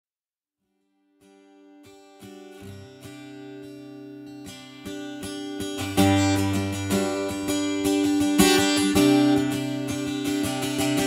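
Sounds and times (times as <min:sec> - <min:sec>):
acoustic guitar playing: 0:01.1 - 0:11.0.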